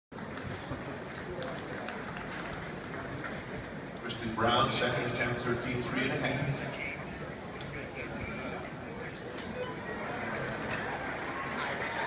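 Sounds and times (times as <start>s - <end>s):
distant crowd murmur: 0.2s - 12.0s.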